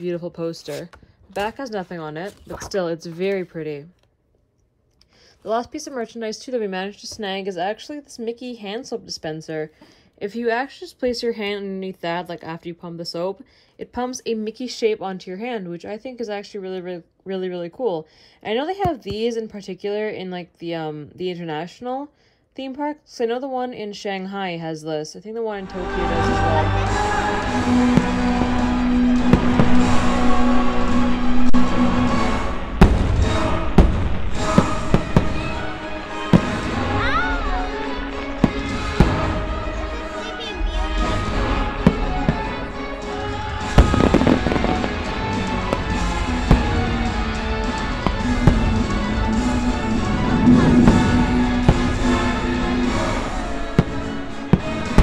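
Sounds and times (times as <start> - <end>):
fireworks bangs and crackles: 25.7 - 55.0
loud show music: 25.7 - 55.0.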